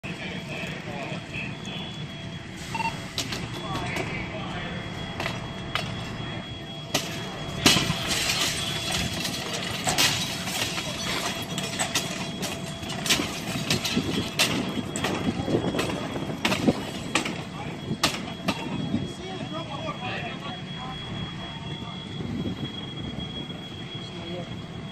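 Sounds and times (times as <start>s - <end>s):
fire truck engines rumbling: 0.0s - 24.9s
fire cracking and popping: 4.9s - 19.5s
onlookers' voices: 14.7s - 24.8s.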